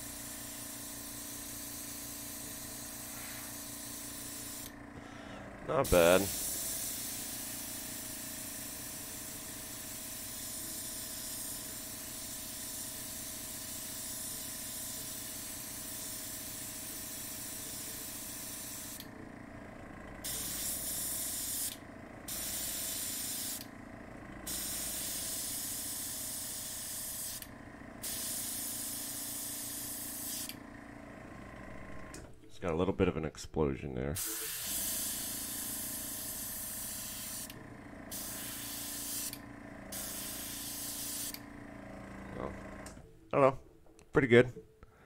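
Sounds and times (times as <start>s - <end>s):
steady low hum: 0.0s - 12.7s, 15.0s - 33.3s, 34.6s - 43.9s
airbrush hissing: 0.6s - 4.7s, 5.8s - 19.0s, 20.3s - 23.7s, 24.5s - 30.6s, 34.2s - 41.4s.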